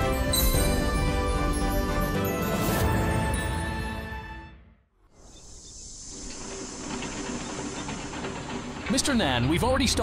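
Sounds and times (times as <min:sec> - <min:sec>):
steady hiss: 0:05.1 - 0:08.2.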